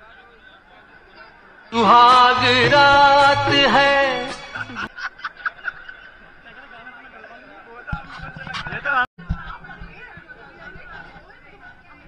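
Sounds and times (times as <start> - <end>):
faint background noise: 0.0 - 12.0
man chuckling: 4.5 - 4.9.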